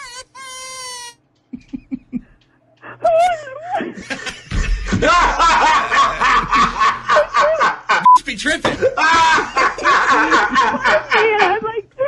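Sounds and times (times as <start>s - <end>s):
man laughing hard: 1.6s - 2.4s, 3.1s - 8.0s, 8.7s - 11.7s.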